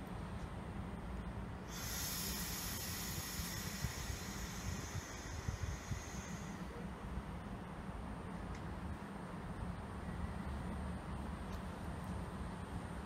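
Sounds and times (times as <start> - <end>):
compressed air hissing: 1.6 - 7.0.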